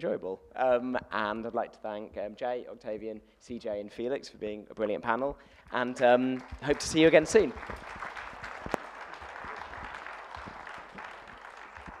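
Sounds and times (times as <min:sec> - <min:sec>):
audience applauding: 0:05.8 - 0:12.0.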